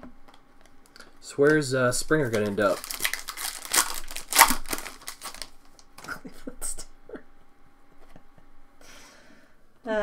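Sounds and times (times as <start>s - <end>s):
card pack wrapper crinkling: 0.8s - 6.2s.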